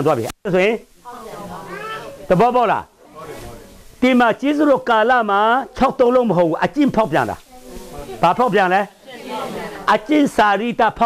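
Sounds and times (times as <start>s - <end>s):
man speaking: 0.0s - 0.9s, 2.3s - 7.4s, 8.0s - 8.9s, 9.8s - 11.0s.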